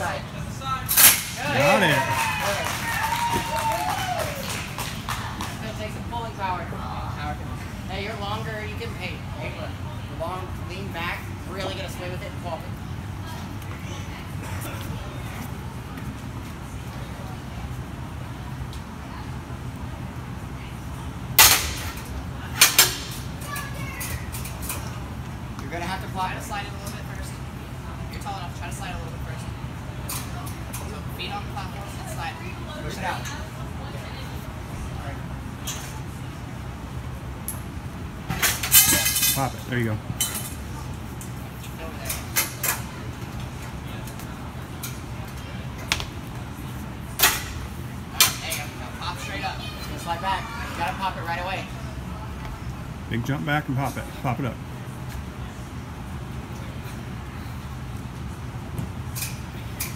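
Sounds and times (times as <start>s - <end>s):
steady low hum: 0.0s - 59.9s.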